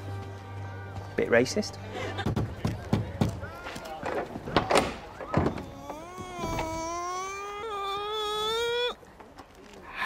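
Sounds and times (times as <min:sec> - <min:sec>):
high-pitched crone vocal noise: 0:05.6 - 0:09.0.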